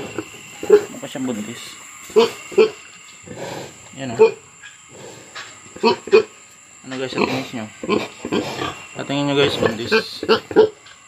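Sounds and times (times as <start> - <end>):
pig grunting: 0.0 - 1.4, 2.1 - 10.8.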